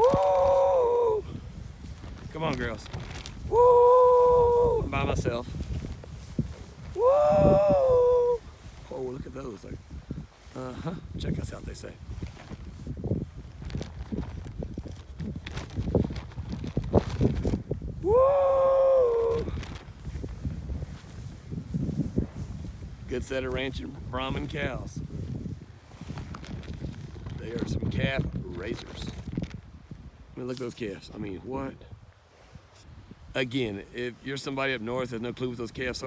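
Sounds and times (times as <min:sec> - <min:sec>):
footsteps through grass: 0:00.0 - 0:17.8, 0:18.9 - 0:31.0
wind on microphone: 0:00.0 - 0:36.0.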